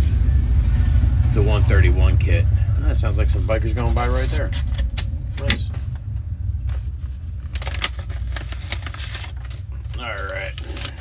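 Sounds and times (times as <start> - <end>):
paper crackling: 6.7 - 11.0.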